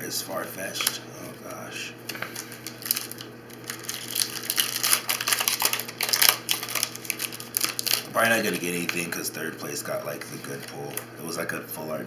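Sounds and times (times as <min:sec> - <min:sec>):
foil wrapper crinkling and tearing: 0:00.7 - 0:01.0, 0:02.1 - 0:09.2.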